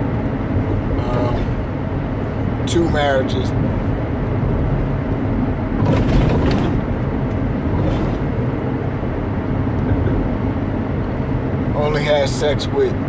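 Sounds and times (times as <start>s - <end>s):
car road and engine rumble: 0.0s - 13.0s.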